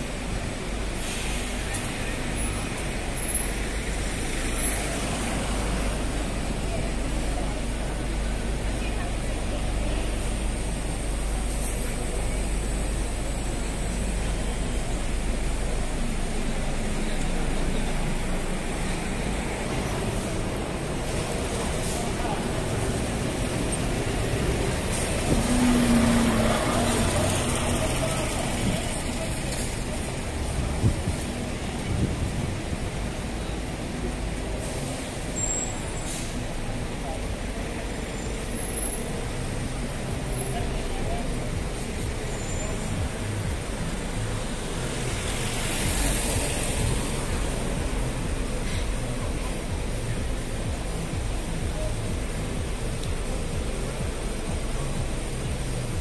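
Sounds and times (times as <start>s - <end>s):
passers-by talking: 0.0s - 56.0s
road traffic noise: 0.0s - 56.0s.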